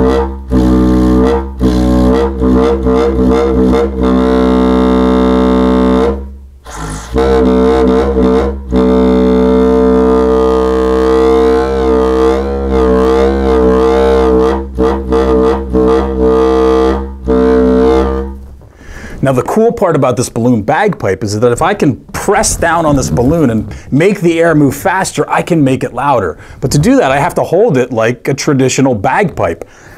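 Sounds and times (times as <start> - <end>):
balloon bagpipe drone: 0.0 - 18.4.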